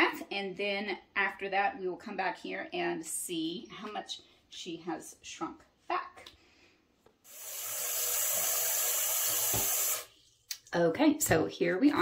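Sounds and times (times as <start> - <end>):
faucet running into sink: 7.3 - 10.1.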